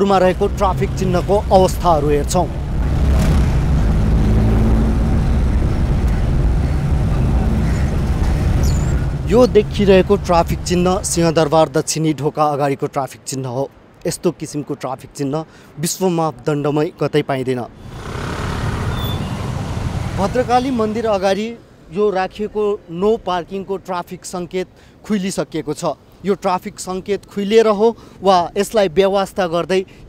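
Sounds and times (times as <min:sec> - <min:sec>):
car engine and road noise: 0:00.0 - 0:11.8, 0:17.7 - 0:22.0.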